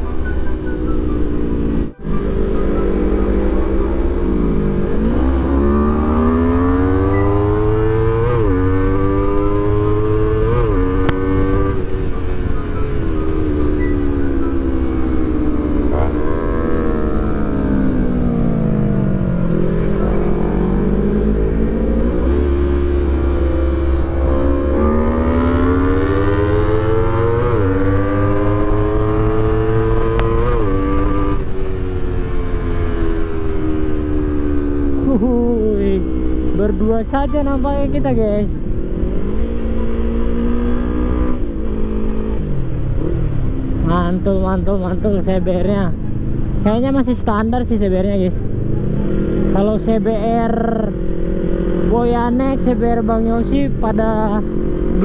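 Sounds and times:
motorcycle engine accelerating: 0:00.0 - 0:55.0
steady low rumble: 0:13.6 - 0:24.8.

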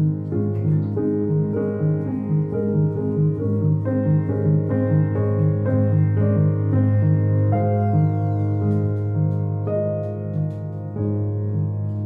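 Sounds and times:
solo piano improvisation: 0:00.0 - 0:12.0.

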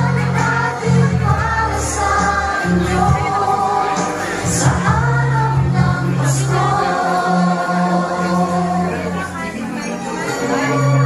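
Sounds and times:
steady bass: 0:00.0 - 0:09.4
choir singing held notes: 0:00.0 - 0:09.5.

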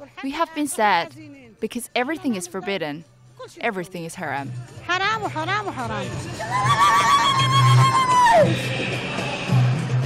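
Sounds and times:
woman ululating: 0:06.4 - 0:08.6.

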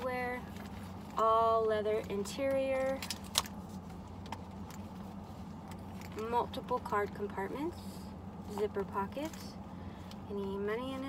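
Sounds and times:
low hum in car cabin: 0:00.0 - 0:11.0.

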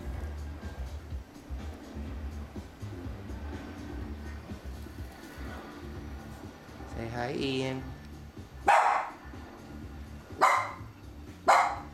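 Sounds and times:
small dog barking: 0:08.6 - 0:09.2, 0:10.4 - 0:11.9.

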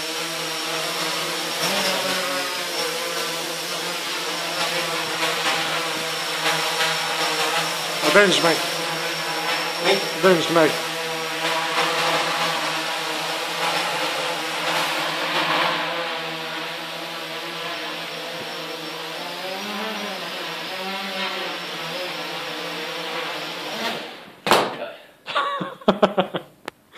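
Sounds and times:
quadcopter motors buzzing: 0:00.0 - 0:24.3.

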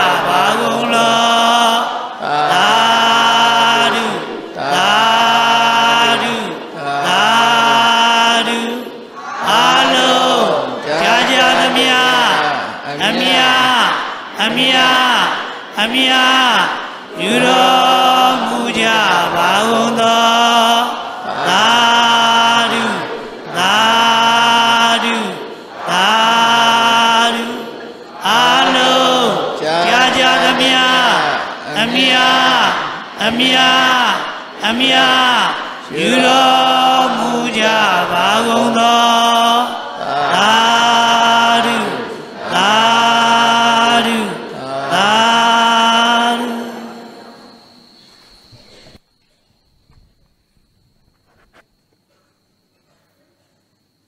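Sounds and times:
man chanting: 0:00.0 - 0:46.9.

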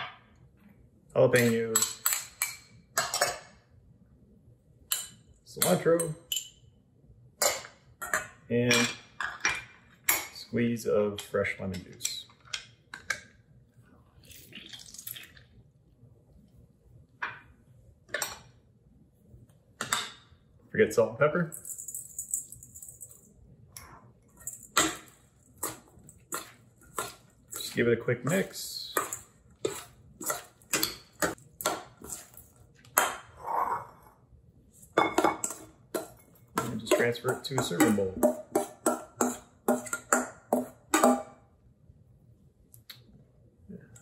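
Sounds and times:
metal spoon clinking bowls: 0:04.9 - 0:06.6, 0:24.4 - 0:32.6, 0:34.9 - 0:41.3
metal spoon clinking on steel bowl: 0:35.0 - 0:41.2.

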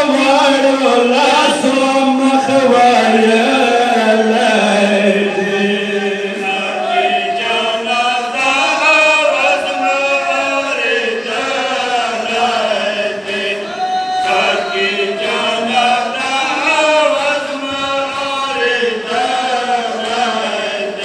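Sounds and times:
men chanting a lament: 0:00.0 - 0:21.0.

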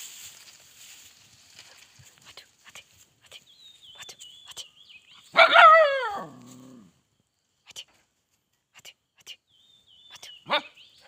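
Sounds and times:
dog barking: 0:05.3 - 0:06.4, 0:10.5 - 0:10.8.

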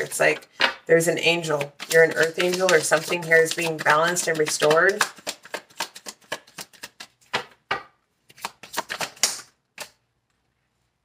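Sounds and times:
cards being shuffled: 0:01.3 - 0:07.6, 0:08.2 - 0:10.0.

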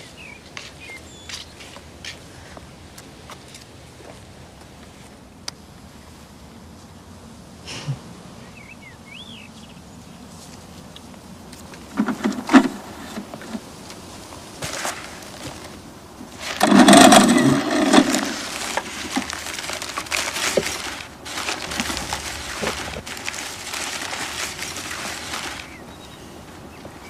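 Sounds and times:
tissue paper crumpling: 0:16.3 - 0:26.2.

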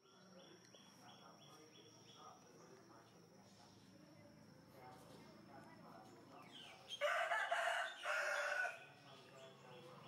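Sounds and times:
rooster crowing: 0:07.0 - 0:08.8.

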